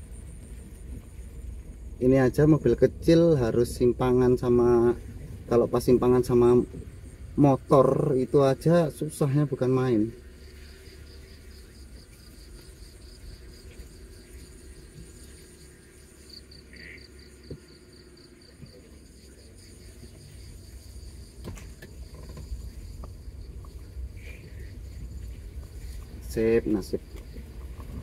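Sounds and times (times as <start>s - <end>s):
car moving slowly: 0.0s - 28.0s
night insects chirring: 0.0s - 28.0s.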